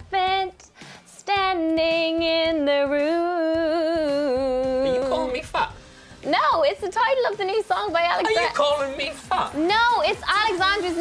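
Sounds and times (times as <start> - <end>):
woman singing with vibrato: 0.0 - 5.3.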